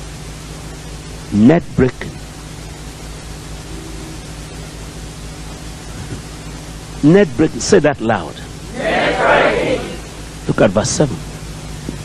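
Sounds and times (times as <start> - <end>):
background hiss: 0.0 - 12.0
low electrical hum: 0.0 - 12.0.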